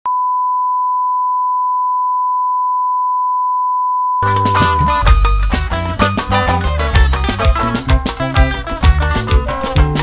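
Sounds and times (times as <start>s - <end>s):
steady test tone beep: 0.1s - 5.2s.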